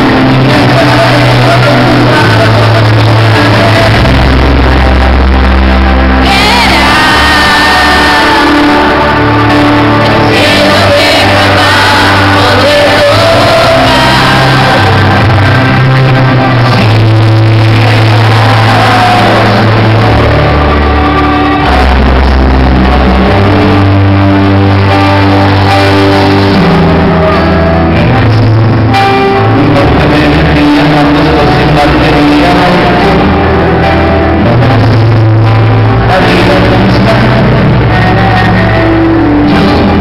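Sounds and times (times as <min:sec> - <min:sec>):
man singing: 0:00.0 - 0:40.0.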